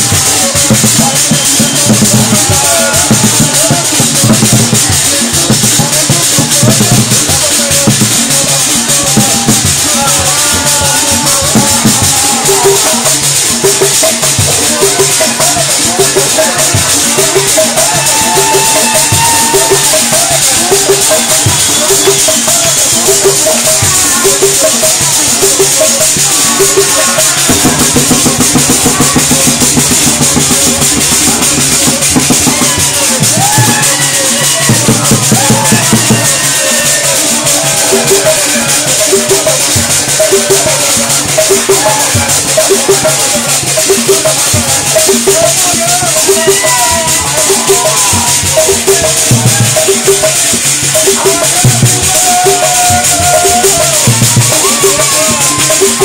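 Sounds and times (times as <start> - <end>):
dance music with drumming: 0.0 - 56.0
rattling shakers: 0.0 - 56.0
voices over music: 0.0 - 56.0.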